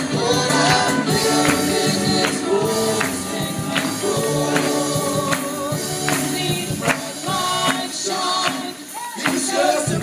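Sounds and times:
gospel singing: 0.0 - 10.0.

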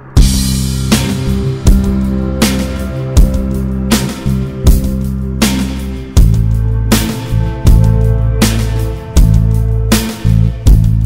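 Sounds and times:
strong beat hits: 0.0 - 11.0
instrumental band music: 0.2 - 11.0.

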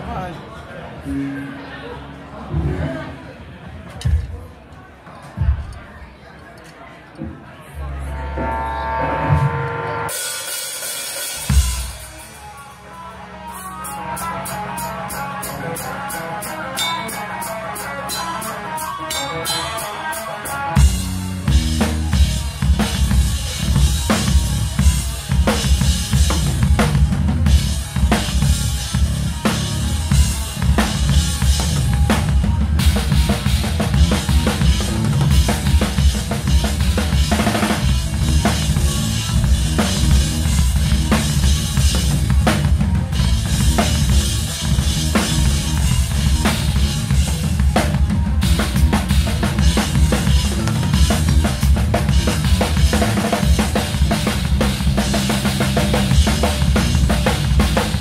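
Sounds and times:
band low end: 7.8 - 10.1, 20.8 - 58.0.

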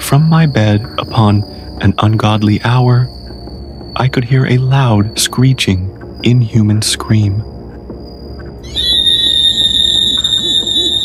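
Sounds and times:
high-pitched inhuman scream: 8.7 - 11.0.

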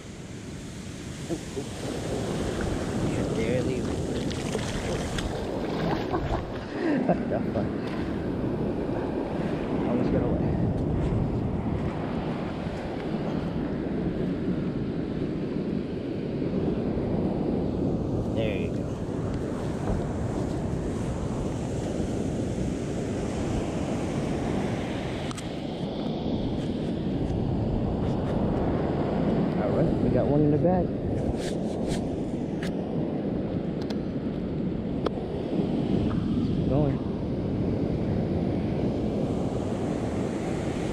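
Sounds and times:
ocean surf breaking on beach: 0.0 - 40.9
wind buffeting microphone: 0.0 - 40.9.

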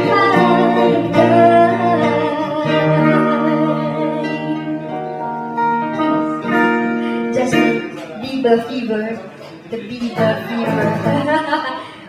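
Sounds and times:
acoustic guitars playing: 0.0 - 11.7
people talking: 7.4 - 12.0.

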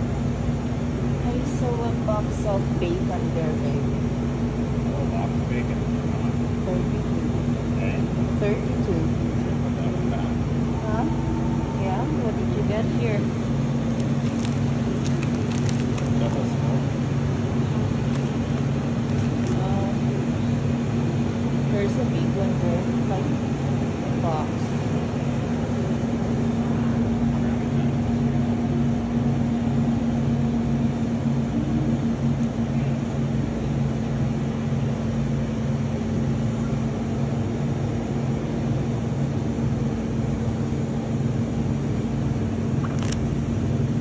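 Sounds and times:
low electrical hum: 0.0 - 44.0.

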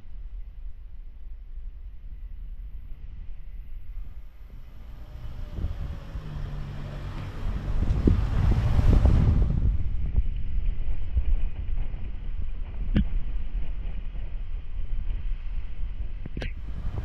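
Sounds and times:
wind buffeting microphone: 0.0 - 17.0
vehicle passing by: 4.1 - 10.0, 16.5 - 17.0.

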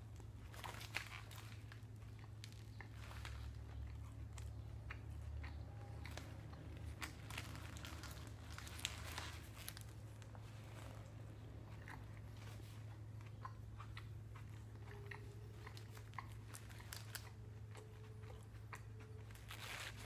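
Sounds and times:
person chewing sandwich: 0.0 - 20.0
steady low hum: 0.0 - 20.0.

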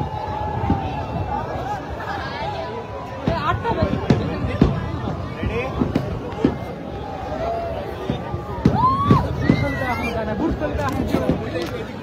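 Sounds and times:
crowd chatter and shouts: 0.0 - 12.0
fireworks bangs: 0.0 - 12.0.

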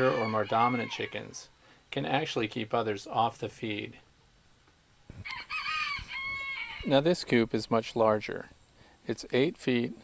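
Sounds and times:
rooster crowing: 0.0 - 1.5, 5.2 - 7.0.

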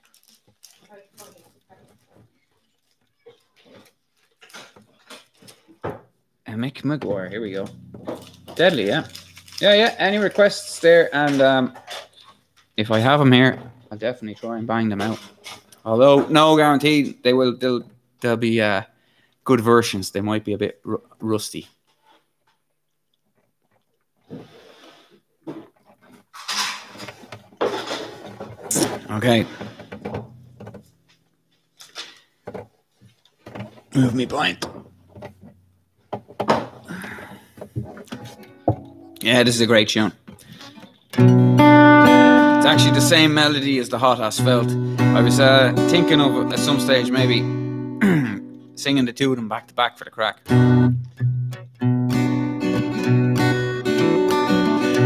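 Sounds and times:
handling rustles and knocks: 7.0 - 16.4, 25.4 - 39.4.

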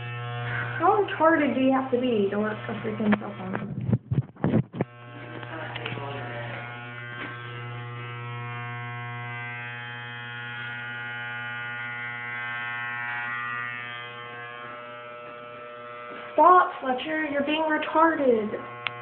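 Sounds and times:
electric hair clippers buzzing: 0.0 - 19.0.

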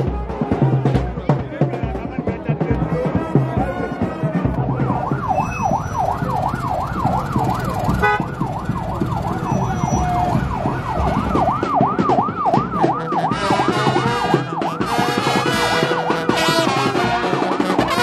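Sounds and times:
electronic siren yelping: 4.6 - 16.4.

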